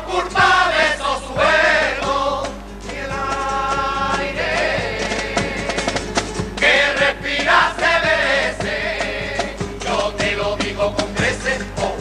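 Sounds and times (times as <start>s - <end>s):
male chorus singing in unison: 0.0s - 12.0s.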